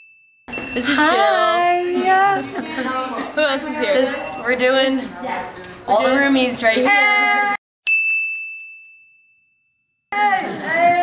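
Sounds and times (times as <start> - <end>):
bright bell-like ding: 0.0 - 1.1, 7.9 - 9.9.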